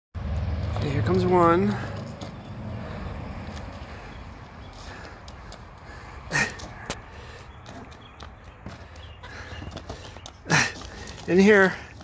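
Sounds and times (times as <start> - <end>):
traffic rumble: 0.2 - 12.0
wind: 0.2 - 12.0
cardboard boxes scraping on asphalt: 0.6 - 12.0
light footsteps: 0.6 - 12.0.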